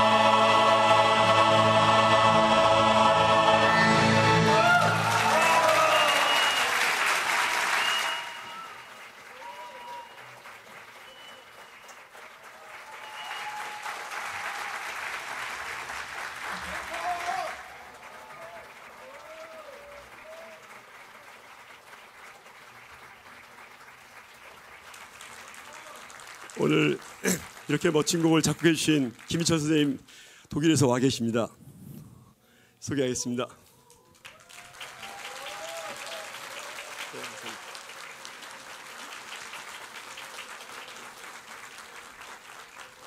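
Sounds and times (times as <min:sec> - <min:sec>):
audience clapping: 0:04.4 - 0:30.3, 0:33.8 - 0:43.0.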